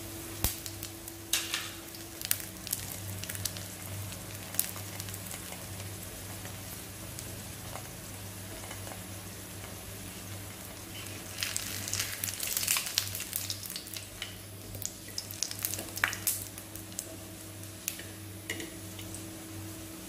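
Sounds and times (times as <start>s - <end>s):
crackles and pops of frying: 0.0s - 19.8s
bread sizzling in oil: 0.0s - 20.0s.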